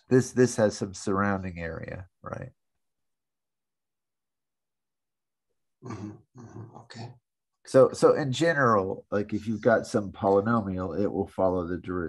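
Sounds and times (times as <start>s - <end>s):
person murmuring mm-hmm: 5.8s - 7.1s.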